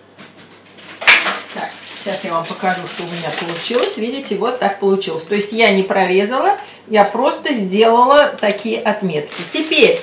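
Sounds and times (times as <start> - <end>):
baking paper crackling: 0.3 - 5.5, 7.7 - 10.0.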